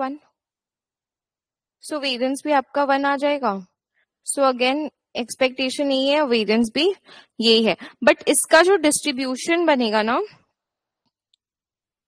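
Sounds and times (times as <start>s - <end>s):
woman speaking: 1.8s - 3.7s, 4.3s - 10.4s.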